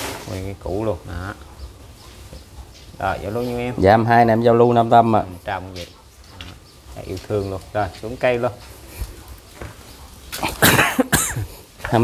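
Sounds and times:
person coughing: 10.4 - 11.5.

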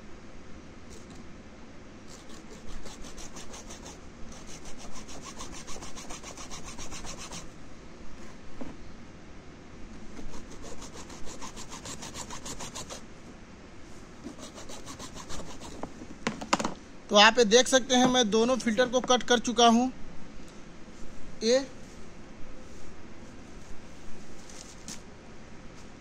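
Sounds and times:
hacksaw cutting plastic: 2.1 - 7.5, 10.2 - 13.0, 14.2 - 15.9.

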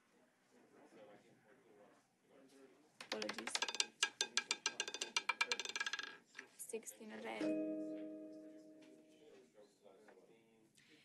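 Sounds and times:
roulette ball clattering over frets: 3.0 - 6.6.

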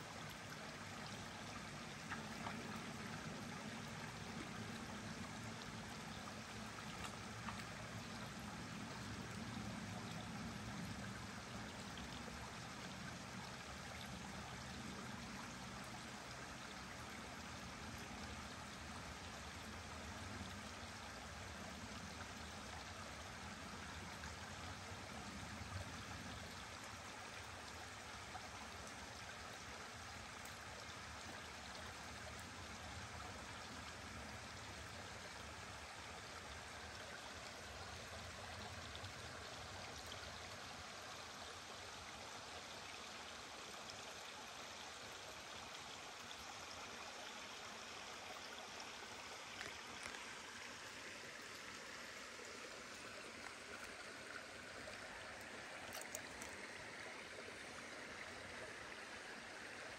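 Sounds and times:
creek water rushing: 0.0 - 59.9.

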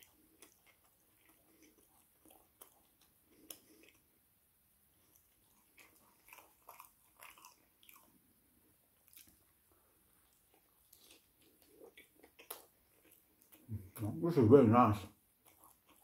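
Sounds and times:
chewing and biting food: 0.0 - 4.1, 4.9 - 14.1, 15.1 - 16.0.

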